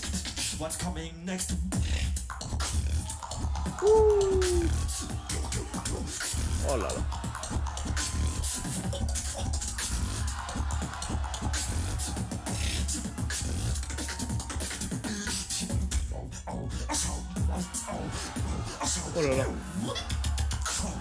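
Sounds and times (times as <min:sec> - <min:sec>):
beatboxing through speakers: 0:00.0 - 0:21.0.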